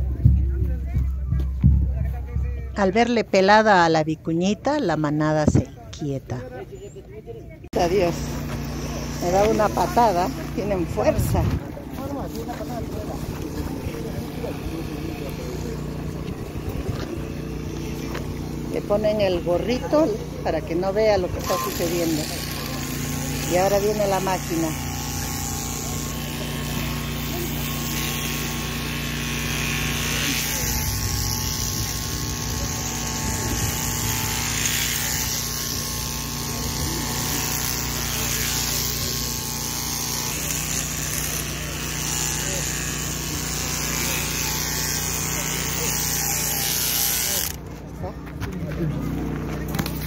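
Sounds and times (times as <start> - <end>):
electric shearing machine buzzing: 7.7 - 48.0, 48.9 - 50.0
clippers cutting fleece hiss: 21.4 - 47.6.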